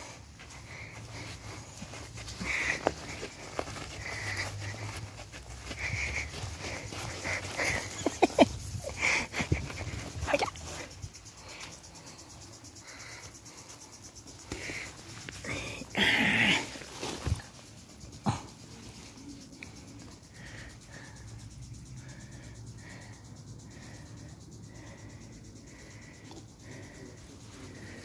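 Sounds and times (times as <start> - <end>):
scuffling: 0.0 - 11.6.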